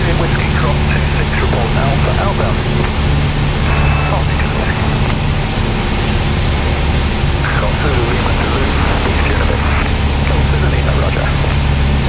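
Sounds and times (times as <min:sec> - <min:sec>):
propeller plane engine droning: 0:00.0 - 0:12.0.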